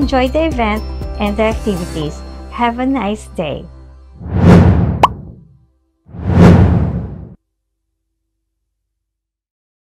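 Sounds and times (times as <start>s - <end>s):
quick rising pop: 4.2s - 5.5s, 6.2s - 7.4s
whoosh: 4.2s - 5.5s, 6.1s - 7.4s.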